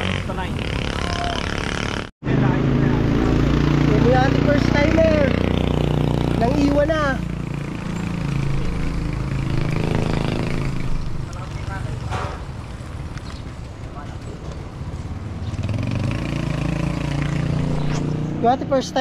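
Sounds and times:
motor vehicle engines droning: 0:00.0 - 0:19.0.

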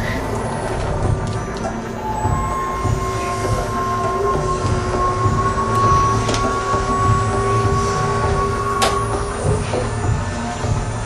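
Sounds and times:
dense low rumble: 0:00.0 - 0:11.0.

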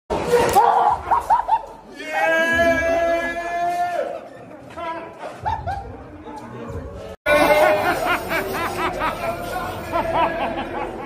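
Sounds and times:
people chattering: 0:01.8 - 0:11.0.

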